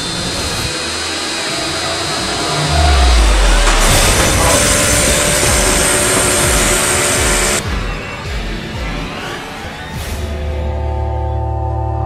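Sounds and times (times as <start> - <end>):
table saw running: 0.0 - 7.6
music with low pulsing beat: 2.8 - 9.0.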